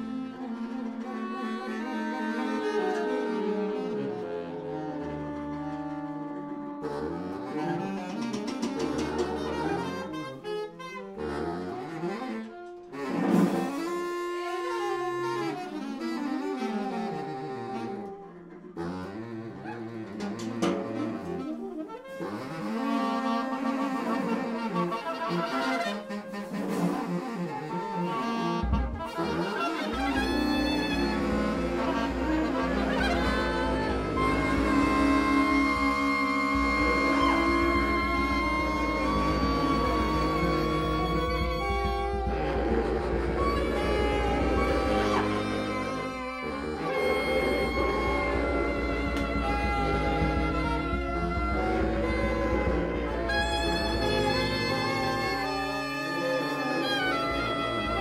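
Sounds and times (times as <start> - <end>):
saxophone ensemble improvising: 0.0 - 58.0.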